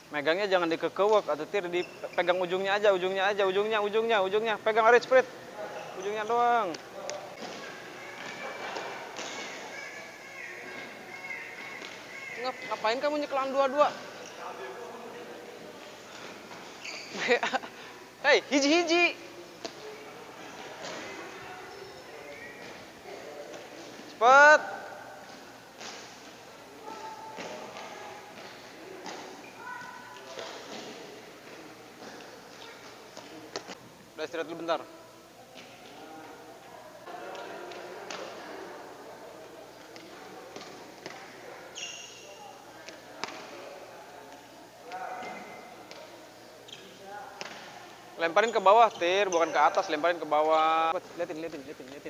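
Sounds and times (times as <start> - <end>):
distant voices: 0.0 - 34.2
footsteps on indoor court: 5.0 - 17.6, 25.0 - 33.8.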